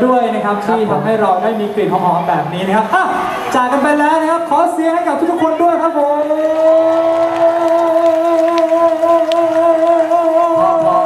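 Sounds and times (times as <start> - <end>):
man singing a long note: 6.1 - 11.0.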